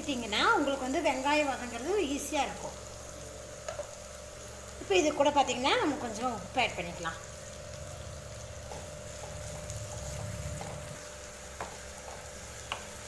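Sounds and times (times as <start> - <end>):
onions frying in oil: 0.0 - 13.0.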